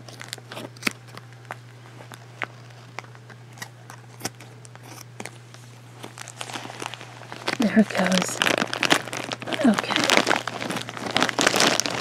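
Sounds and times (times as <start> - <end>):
scissors snipping plastic bag: 0.0 - 5.4, 6.0 - 12.0
steady low hum: 0.0 - 12.0.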